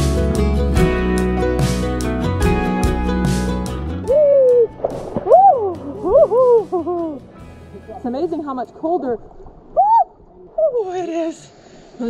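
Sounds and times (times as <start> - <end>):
woman crying ooh: 4.0 - 4.7, 5.3 - 7.2.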